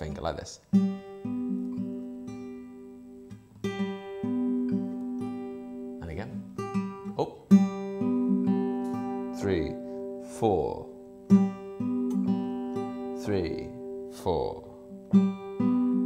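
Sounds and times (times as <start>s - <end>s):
fingerpicked acoustic guitar: 0.0s - 16.0s.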